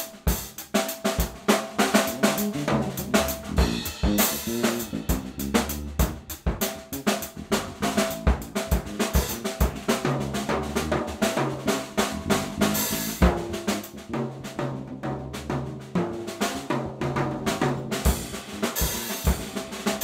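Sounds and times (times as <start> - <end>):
drum kit playing: 0.0 - 20.0
bass line: 1.7 - 16.5, 17.1 - 19.9.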